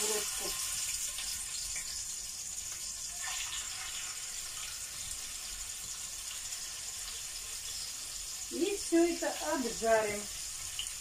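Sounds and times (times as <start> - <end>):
meat sizzling in hot oil: 0.0 - 11.0.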